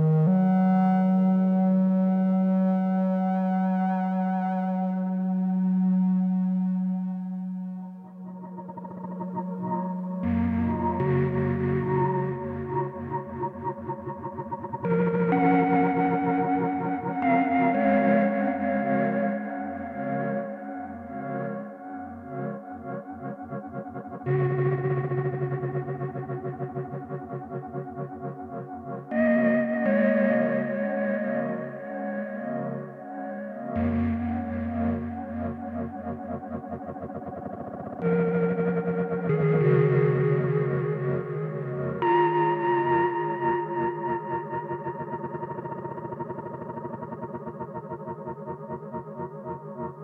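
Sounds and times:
synthesizer holding a long note: 0.0s - 50.0s.

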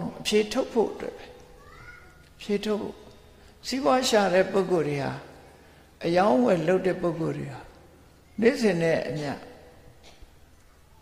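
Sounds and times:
man preaching: 0.0s - 1.4s, 2.4s - 5.4s, 6.0s - 9.7s.

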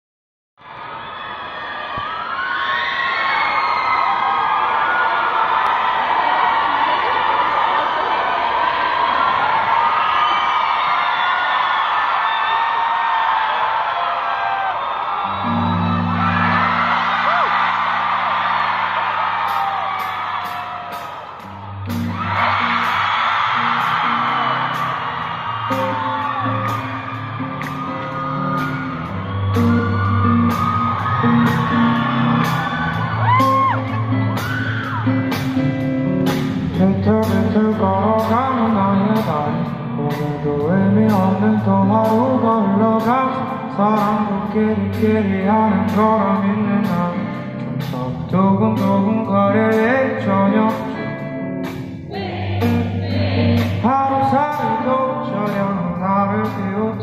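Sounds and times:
crowd cheering and screaming: 0.6s - 57.0s
live rock band: 15.2s - 57.0s
low bass notes: 26.0s - 43.0s.

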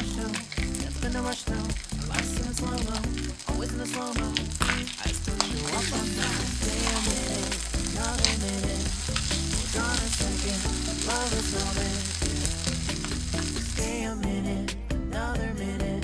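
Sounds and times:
spatula stirring in a pan: 0.0s - 13.9s
rice sizzling in a frying pan: 0.0s - 14.0s.

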